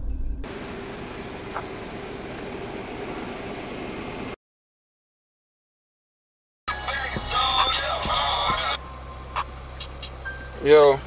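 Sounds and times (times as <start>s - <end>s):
high tone: 6.7s - 11.0s.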